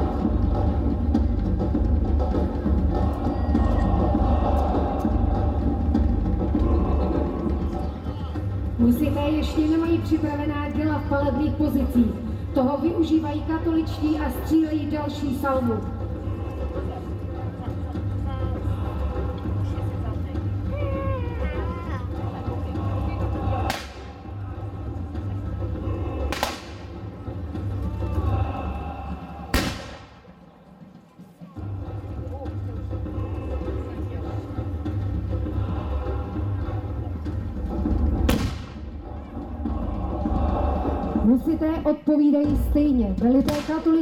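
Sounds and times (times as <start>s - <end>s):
black-powder gunshots: 23.7s - 24.1s, 26.3s - 27.0s, 29.5s - 30.4s, 38.3s - 39.0s, 43.5s - 44.0s
steady low rumble: 31.6s - 41.9s.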